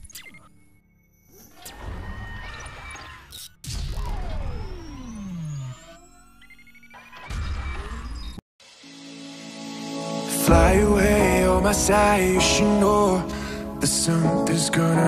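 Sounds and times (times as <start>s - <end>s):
electronic music: 8.6s - 15.0s
song: 8.8s - 15.0s.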